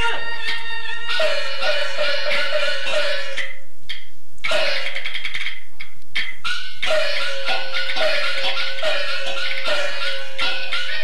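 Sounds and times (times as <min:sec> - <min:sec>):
high-pitched fiddle opera music: 0:00.0 - 0:02.7.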